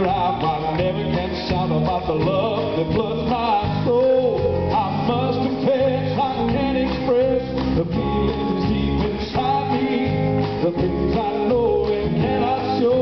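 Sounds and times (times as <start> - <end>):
drum kit: 0.0 - 13.0
electric guitar: 0.0 - 13.0
man singing into a microphone: 0.0 - 13.0.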